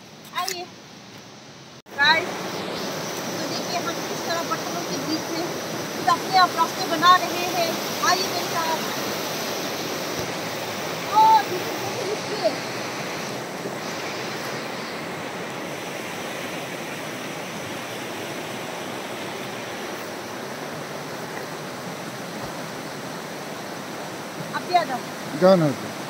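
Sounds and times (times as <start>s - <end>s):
river water rushing: 0.0s - 26.0s.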